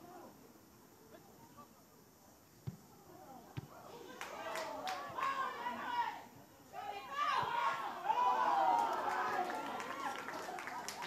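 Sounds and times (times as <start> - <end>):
players and crowd shouting: 3.2 - 11.0.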